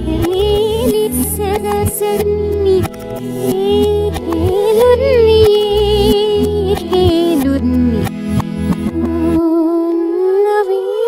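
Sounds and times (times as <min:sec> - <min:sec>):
bass and beat: 0:00.0 - 0:09.3.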